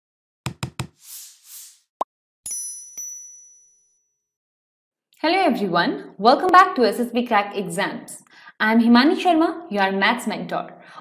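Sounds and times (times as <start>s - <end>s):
quick knocks: 0.5s - 1.0s.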